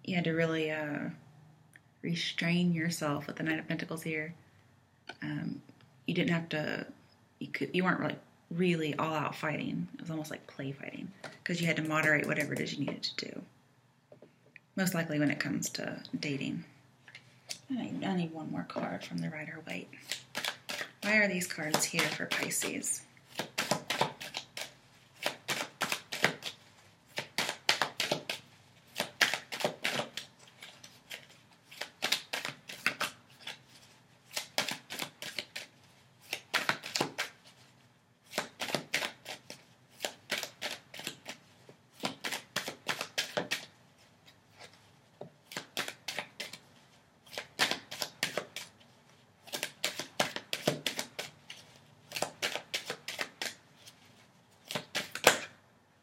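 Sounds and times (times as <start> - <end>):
cards being shuffled: 20.0 - 55.5.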